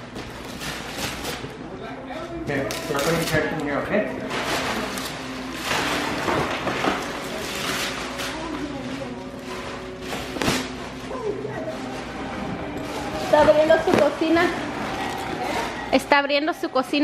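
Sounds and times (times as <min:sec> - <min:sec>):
wrapping paper rustling and ripping: 0:00.2 - 0:01.6, 0:02.5 - 0:16.1.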